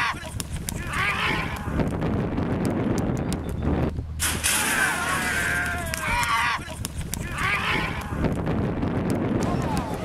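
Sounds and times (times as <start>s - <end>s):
voices yelling: 0.0s - 1.8s, 4.5s - 8.3s
horses galloping on dirt: 0.0s - 4.0s, 4.7s - 10.0s.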